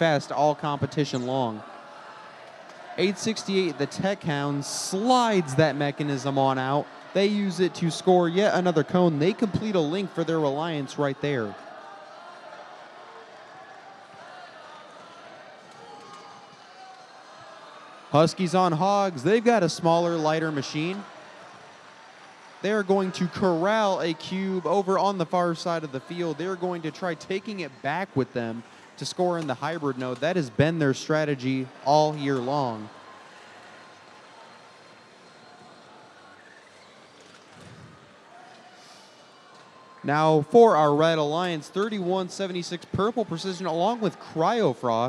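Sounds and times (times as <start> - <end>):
crowd murmur: 0.0 - 45.0
indoor arena background noise: 0.0 - 45.0.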